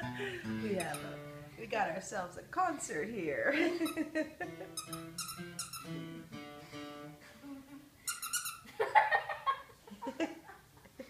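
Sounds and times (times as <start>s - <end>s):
dog squeaking: 0.7s - 1.3s, 3.8s - 4.1s, 4.7s - 6.2s, 8.1s - 8.7s.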